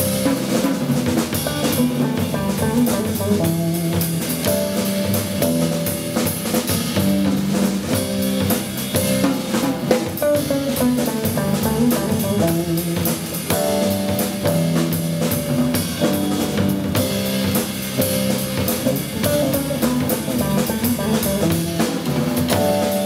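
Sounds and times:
drum kit with cymbal strokes: 0:00.0 - 0:23.0
electric jazz guitar: 0:00.0 - 0:23.0.

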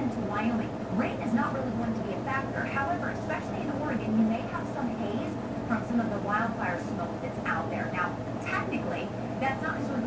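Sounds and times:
steady low hum: 0:00.0 - 0:10.0
woman speaking through tv speaker: 0:00.0 - 0:10.0.

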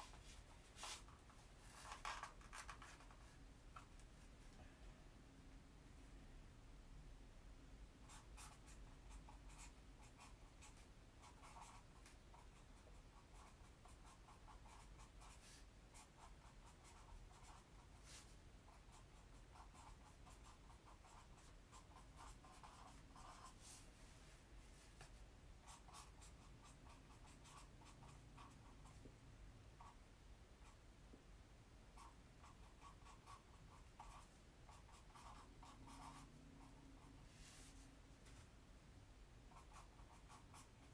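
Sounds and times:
low room hum: 0:00.0 - 0:40.9
pen scratching on paper: 0:08.1 - 0:12.6, 0:13.2 - 0:23.8, 0:32.0 - 0:37.1.

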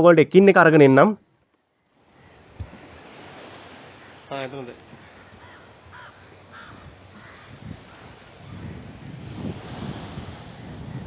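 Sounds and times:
bird calling: 0:01.7 - 0:02.8, 0:03.8 - 0:08.9
wind noise on microphone: 0:02.4 - 0:03.9, 0:04.8 - 0:11.0.

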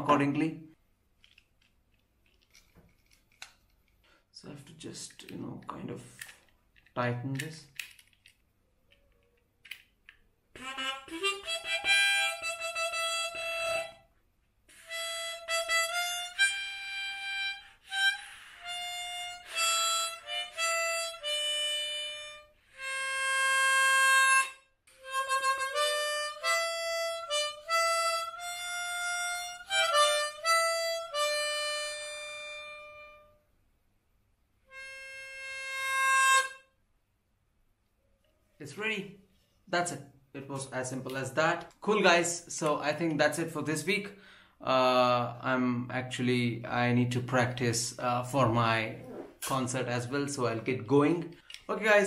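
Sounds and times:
harmonica playing: 0:10.6 - 0:14.1, 0:14.7 - 0:33.4, 0:34.6 - 0:36.8.

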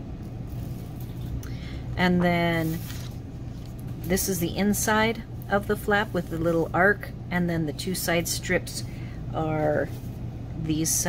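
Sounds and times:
low background hum: 0:00.0 - 0:11.0
rustling of card stock: 0:02.6 - 0:03.8.

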